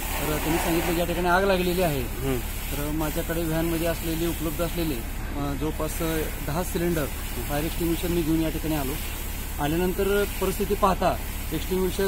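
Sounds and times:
hose water jet hissing: 0:00.0 - 0:12.0
man talking: 0:00.2 - 0:09.0, 0:09.6 - 0:12.0.

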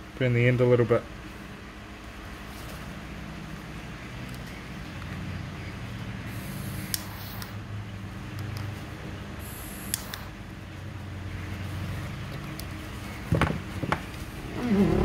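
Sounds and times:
steady low hum: 0:00.0 - 0:15.0
torch lighter gas hiss: 0:06.3 - 0:07.6, 0:09.4 - 0:10.4.

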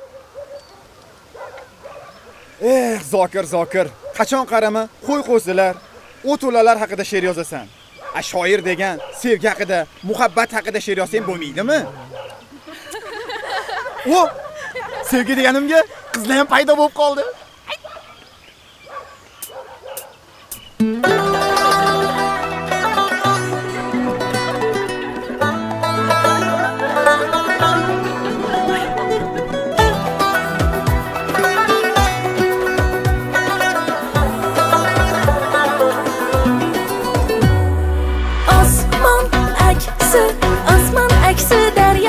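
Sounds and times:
background hiss: 0:00.0 - 0:25.4, 0:27.2 - 0:42.0.

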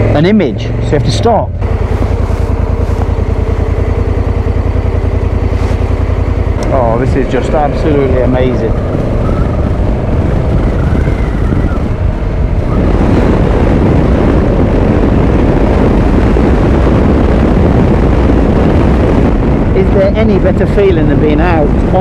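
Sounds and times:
motorcycle engine running: 0:00.0 - 0:22.0
wind rushing over microphone: 0:00.0 - 0:22.0.

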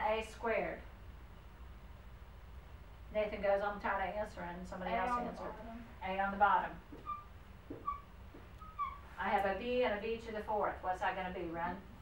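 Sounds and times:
marker squeaking on whiteboard: 0:06.9 - 0:09.1.

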